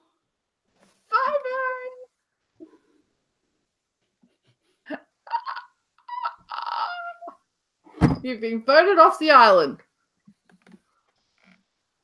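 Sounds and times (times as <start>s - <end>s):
person squealing laugh: 5.0s - 7.4s.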